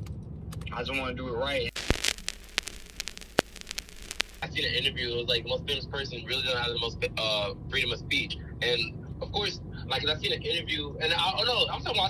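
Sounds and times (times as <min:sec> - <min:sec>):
crackling clicks and pops: 0:01.7 - 0:04.5
low hiss: 0:01.7 - 0:05.0.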